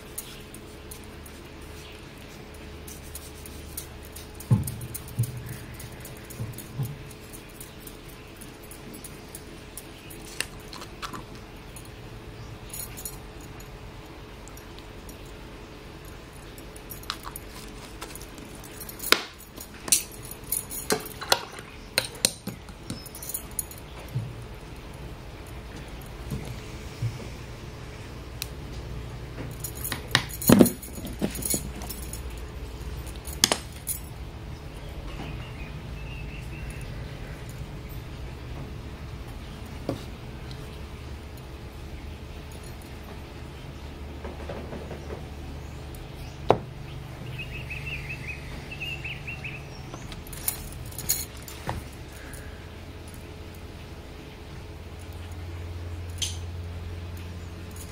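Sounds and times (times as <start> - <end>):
metal bangles jangling: 0.0 - 13.8, 16.0 - 26.3, 29.5 - 34.2, 47.5 - 53.6
faint steady hum: 0.0 - 57.9
glass bottles clinking: 29.4 - 32.6.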